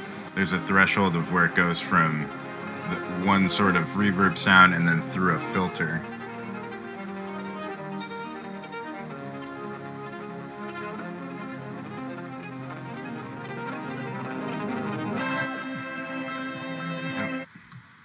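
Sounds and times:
amplified viola sustained notes: 0.0 - 17.5.

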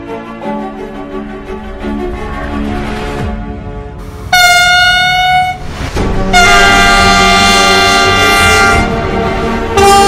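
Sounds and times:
train horn blasts: 4.3 - 5.6, 6.2 - 10.0.

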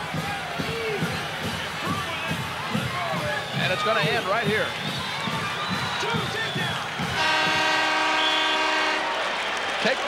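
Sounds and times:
crowd noise: 0.0 - 10.0
buzzer horn: 7.2 - 9.2.

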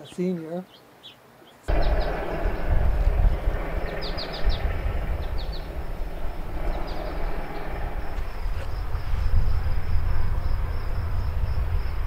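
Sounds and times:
birds chirping: 0.0 - 11.1
wind buffeting microphone: 1.7 - 12.0.

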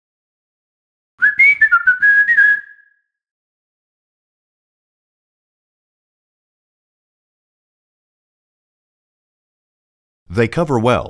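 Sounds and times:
whistled jingle: 1.2 - 3.2.

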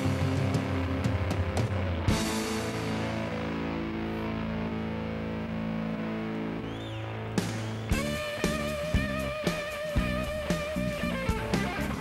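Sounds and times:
bass guitar: 0.0 - 12.0
distorted electric guitar: 0.0 - 12.0
drums: 0.0 - 12.0.

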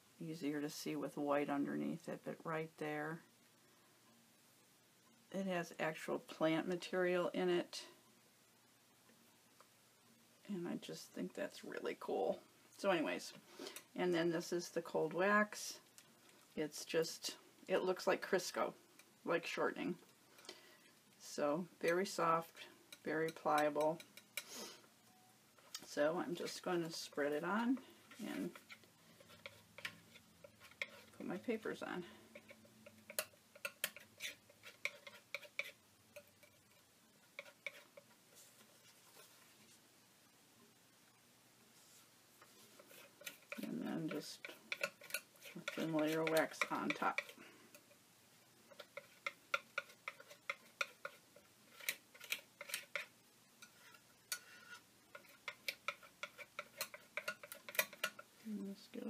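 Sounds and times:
palette knife clicking and scraping: 22.9 - 24.5, 28.1 - 31.4, 32.3 - 38.1, 42.8 - 48.0, 48.7 - 58.3.

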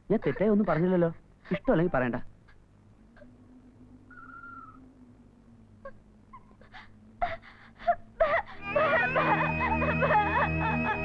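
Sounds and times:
faint steady hum: 0.0 - 11.0
woman whimpering and sobbing: 0.2 - 2.0, 5.8 - 11.0.

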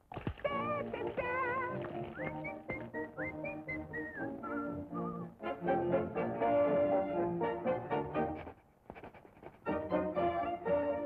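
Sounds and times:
orchestral accompaniment: 1.9 - 8.4, 9.6 - 11.0
whistled tune: 2.0 - 6.4.

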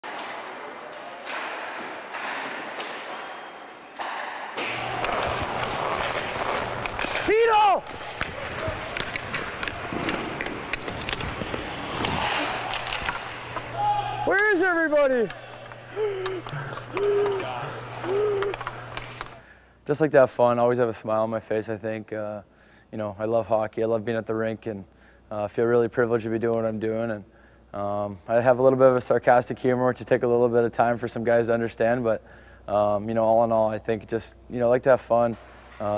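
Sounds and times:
hockey sticks and pucks knocking: 0.0 - 19.4
low hum: 4.6 - 19.4
steady low hum: 4.6 - 35.9
skate blades scraping on ice: 4.7 - 14.3
person speaking: 13.3 - 19.4
man hooting: 15.4 - 19.4.

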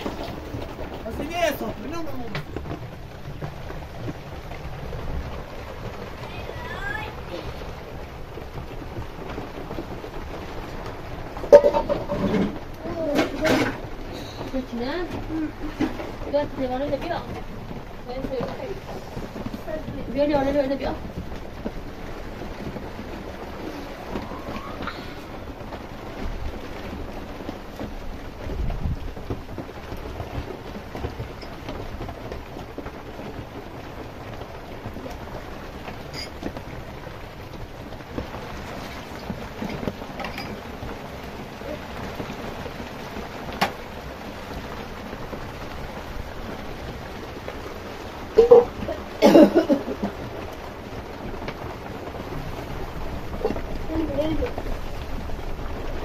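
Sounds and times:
steady rain falling: 0.0 - 56.0.

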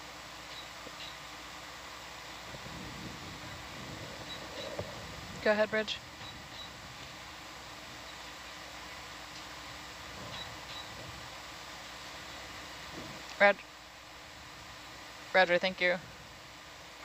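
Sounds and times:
background hiss: 0.0 - 17.0
faint equipment hum: 0.0 - 17.0.

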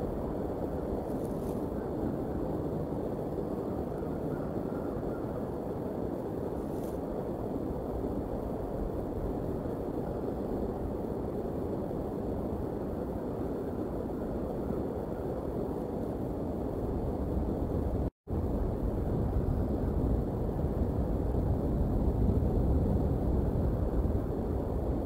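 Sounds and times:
low outdoor rumble: 0.0 - 25.0.

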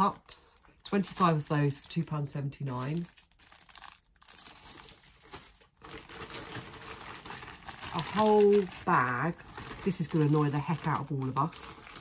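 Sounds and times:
plastic packaging crinkling: 0.3 - 12.0.

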